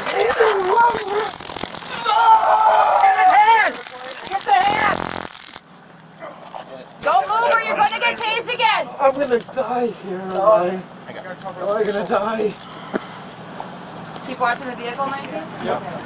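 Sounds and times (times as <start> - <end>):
voices: 0.0 - 5.2, 6.1 - 13.4
high crackling hiss: 0.0 - 5.8
man screaming in pain: 2.0 - 3.7.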